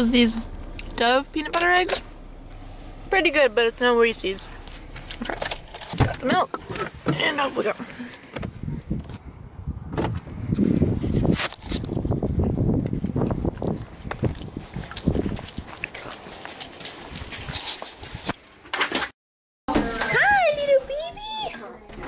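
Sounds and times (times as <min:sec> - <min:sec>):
footsteps on pavement: 0:12.8 - 0:18.4.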